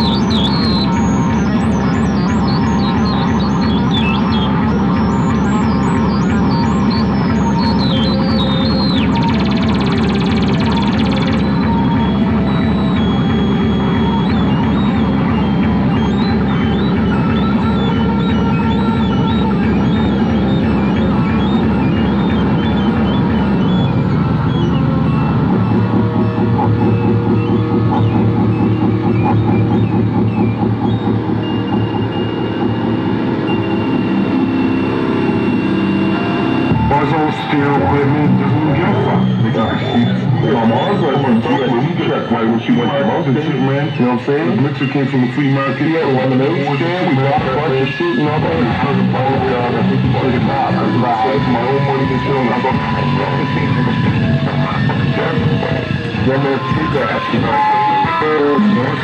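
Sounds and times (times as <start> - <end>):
electronic music pulsing rhythm: 0.0 - 59.0
heavy low pulsing drone: 0.0 - 59.0.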